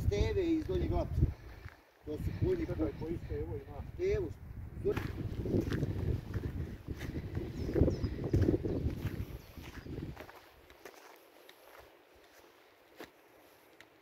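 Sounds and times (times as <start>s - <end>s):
low rumbling microphone noise: 0.0s - 10.3s
footsteps on grass: 4.9s - 14.0s.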